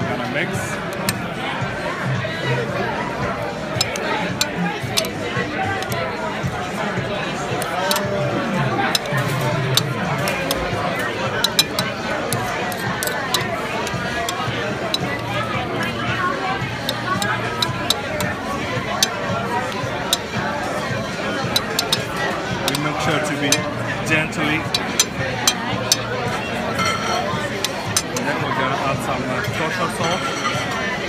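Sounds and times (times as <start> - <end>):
background music: 0.0 - 31.0
restaurant chatter: 0.0 - 31.0.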